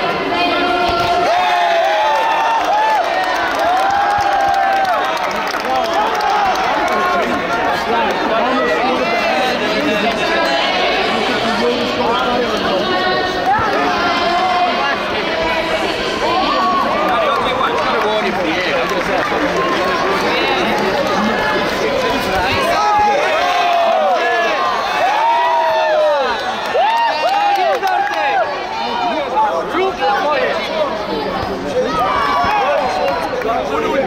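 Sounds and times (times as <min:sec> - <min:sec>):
crowd talking and shouting: 0:00.0 - 0:34.0.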